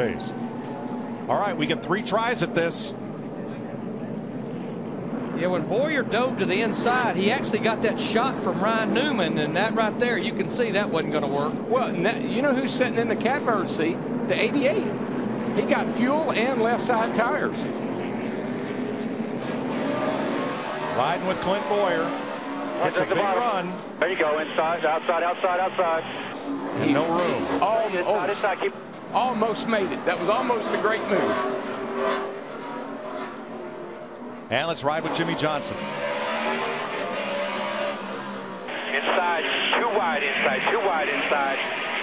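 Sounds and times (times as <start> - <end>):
race car engines droning: 0.0 - 42.0
voice over radio: 22.8 - 28.8, 38.7 - 42.0.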